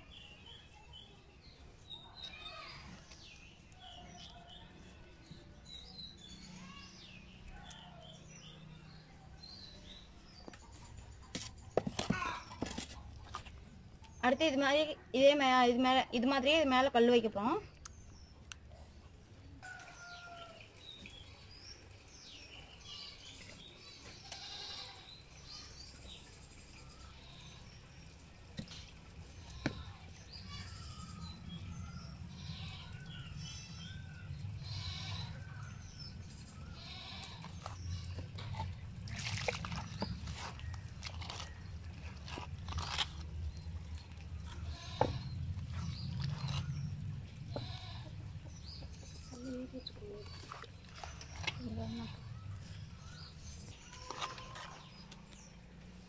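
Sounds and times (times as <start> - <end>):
low background hum: 25.9 - 56.0
bleat-like animal call: 34.6 - 35.4.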